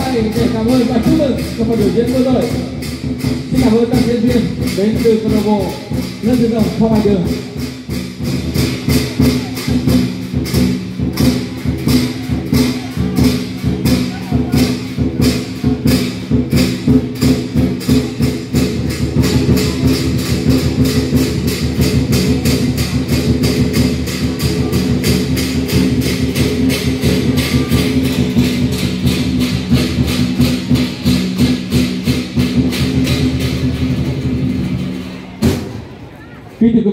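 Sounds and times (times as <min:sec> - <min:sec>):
drum beating fast rhythm: 0:00.0 - 0:35.9
cymbals: 0:00.0 - 0:36.0.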